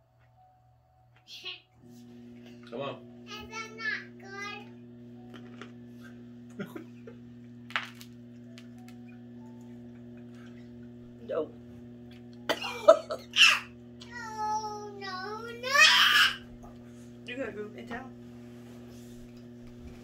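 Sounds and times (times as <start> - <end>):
low electrical hum: 0.0 - 20.0
young child babbling: 13.4 - 16.4.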